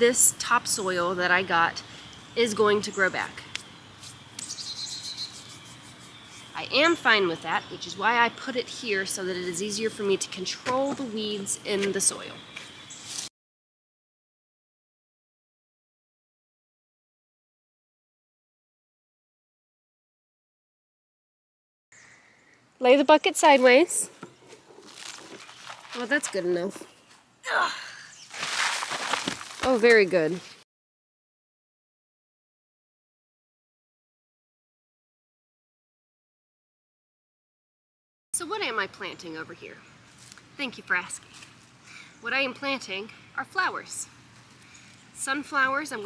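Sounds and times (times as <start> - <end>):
birds chirping: 0.0 - 13.3, 21.9 - 28.5, 38.4 - 46.0
high steady bird trill: 0.1 - 13.3
compost scraping rustle: 23.4 - 26.9, 28.3 - 30.6.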